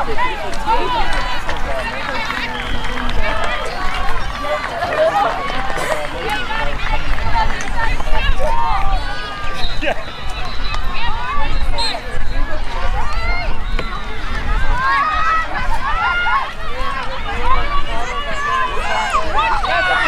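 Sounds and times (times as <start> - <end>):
many voices calling and chattering: 0.0 - 20.0.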